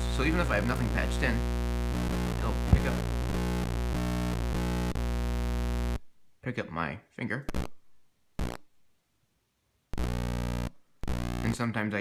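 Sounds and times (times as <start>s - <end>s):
electronic buzzing: 0.0s - 6.1s, 7.5s - 7.8s, 8.4s - 8.7s, 9.9s - 11.6s.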